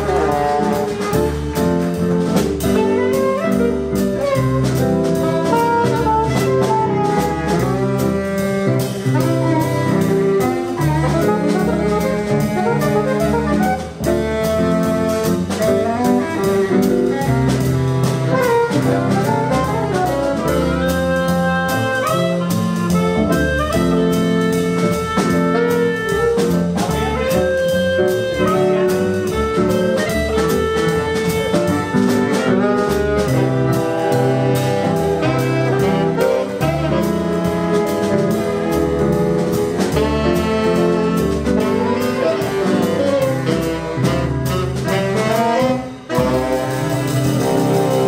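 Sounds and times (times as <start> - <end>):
jazz combo playing: 0.0 - 48.0.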